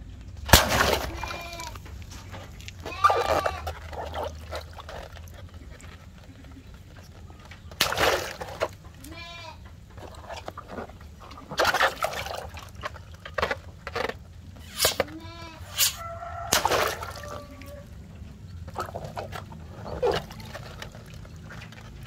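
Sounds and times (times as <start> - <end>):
water splashing into tub: 0.5 - 1.8, 7.8 - 8.8, 11.5 - 13.2, 16.4 - 17.8
water balloons bursting: 0.5 - 2.1, 7.7 - 8.8, 10.2 - 13.7, 14.6 - 15.1, 15.7 - 17.6
animal calling: 0.8 - 7.5, 14.6 - 18.0.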